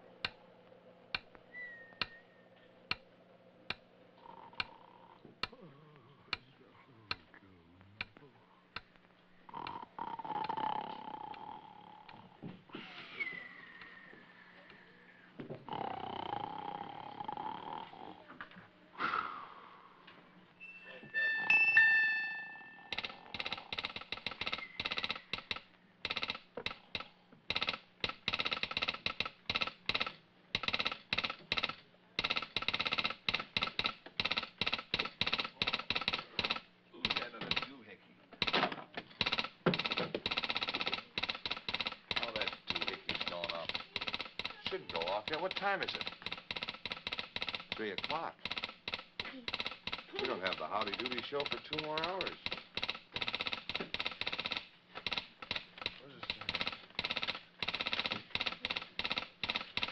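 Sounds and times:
sliding whistle-like tones: 1.5 - 2.5
short bright tone: 20.6 - 22.9
bell ringing rapidly: 20.6 - 23.0.

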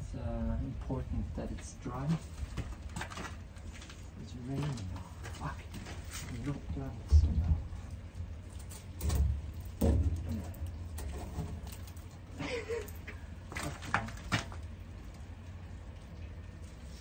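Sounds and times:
low microphone rumble: 0.0 - 13.5.

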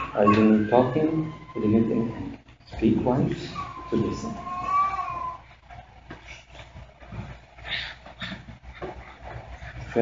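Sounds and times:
faint rustles: 2.3 - 10.0.

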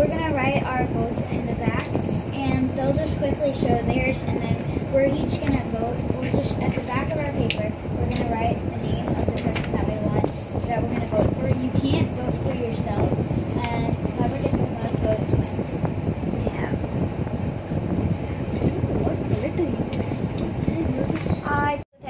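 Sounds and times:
low rumble of room noise: 0.0 - 22.0.

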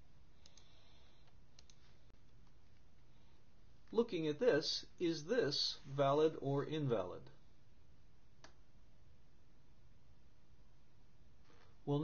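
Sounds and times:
low steady room hum: 0.0 - 12.0
computer clicks: 0.4 - 1.8.

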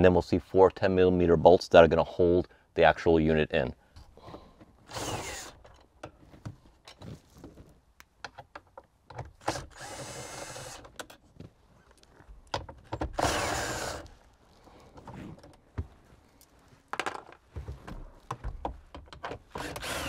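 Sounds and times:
cordless drill whirring: 4.9 - 5.6, 9.4 - 10.9, 13.1 - 14.1, 19.5 - 20.0
handling clicks and knocks: 5.6 - 9.6, 10.8 - 13.3, 14.2 - 19.6.

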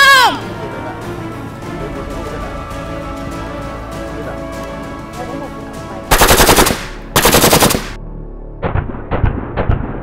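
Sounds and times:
automatic rifle fire: 6.1 - 8.0.

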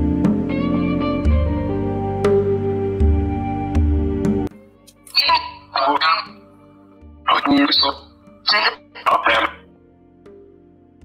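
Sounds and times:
soft background music: 0.0 - 11.0
short voice phrase: 5.2 - 6.4, 7.3 - 9.6.

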